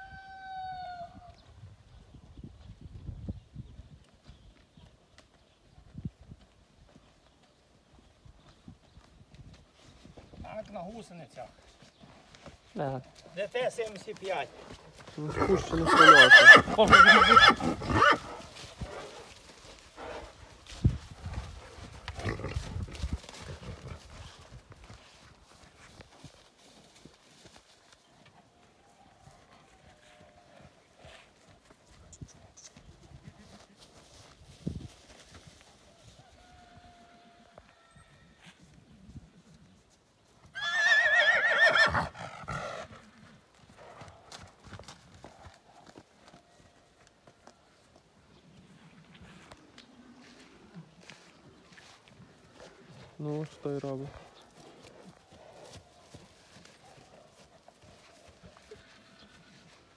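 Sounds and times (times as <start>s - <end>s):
horse hooves thudding on grass: 2.2s - 37.8s, 38.4s - 59.9s
horse neighing loudly: 15.3s - 18.3s, 40.6s - 42.8s.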